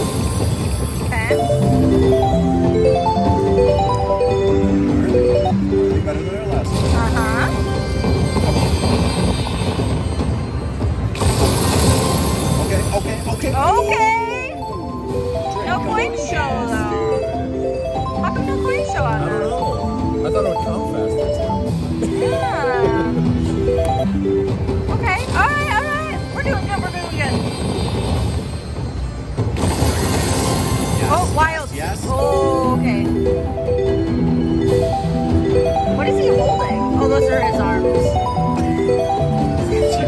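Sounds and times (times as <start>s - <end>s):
slot machine game music: 0.0s - 40.0s.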